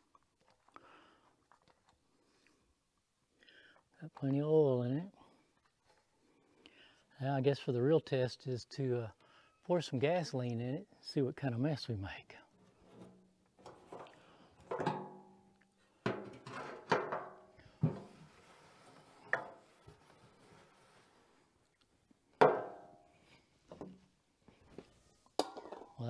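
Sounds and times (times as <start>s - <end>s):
metallic clanks and knocks: 12.9s - 15.3s, 16.1s - 18.1s.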